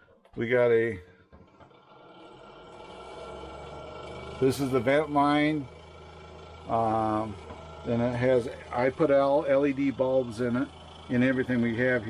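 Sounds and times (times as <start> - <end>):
exhaust fan motor hum: 0.5 - 12.0.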